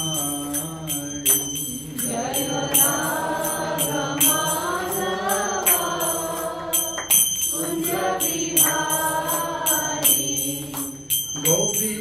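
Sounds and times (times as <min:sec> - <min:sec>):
bright metallic strokes ringing: 0:00.0 - 0:12.0
devotional chanting: 0:00.0 - 0:12.0.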